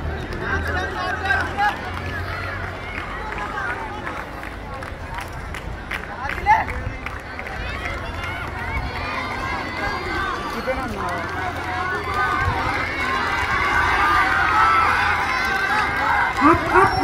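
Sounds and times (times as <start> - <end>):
crowd shouting and chattering: 0.0 - 17.0
loud shout: 7.4 - 17.0.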